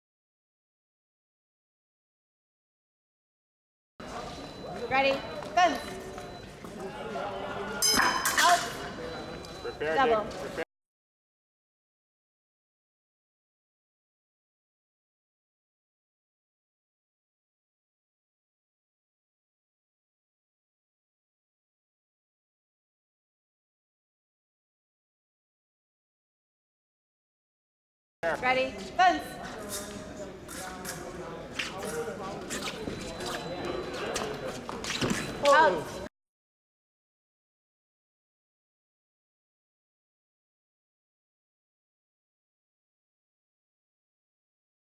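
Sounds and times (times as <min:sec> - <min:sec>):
murmur of talk in a hall: 0:04.0 - 0:10.6, 0:28.2 - 0:36.1
fencing blades clinking: 0:07.8 - 0:08.9
shoe squeaks: 0:28.9 - 0:36.0.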